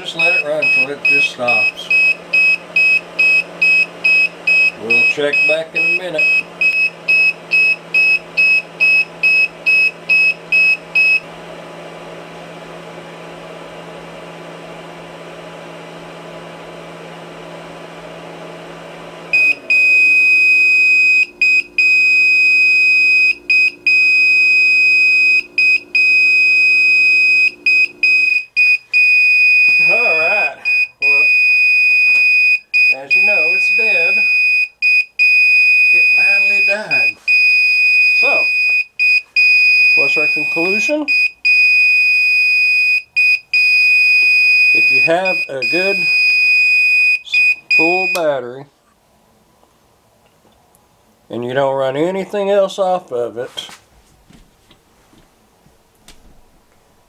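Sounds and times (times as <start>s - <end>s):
continuous high alarm tone: 0.0s - 11.2s, 19.3s - 48.2s
heater fan hum: 0.0s - 57.0s
rapid high-pitched alarm beeps: 19.4s - 48.2s.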